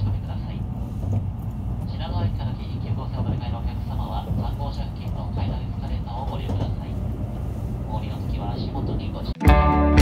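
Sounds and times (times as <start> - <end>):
train rumbling: 0.0 - 9.4
public address announcement: 0.0 - 9.6.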